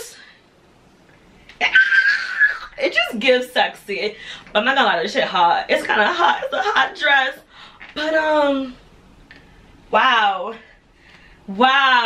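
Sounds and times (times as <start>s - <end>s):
woman speaking: 0.0s - 0.3s, 2.6s - 8.8s, 9.9s - 10.8s, 11.5s - 12.0s
woman squealing excitedly: 1.6s - 2.8s.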